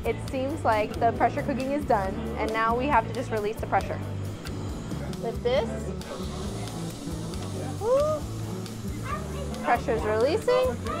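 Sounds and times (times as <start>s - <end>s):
background music with low notes: 0.0s - 11.0s
steam hissing from valve: 4.5s - 11.0s.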